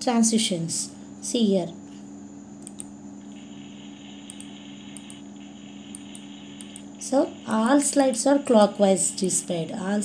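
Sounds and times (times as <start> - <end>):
steady low hum: 0.0 - 10.0
computer mouse clicks: 2.6 - 2.9, 4.2 - 5.2, 5.8 - 6.9.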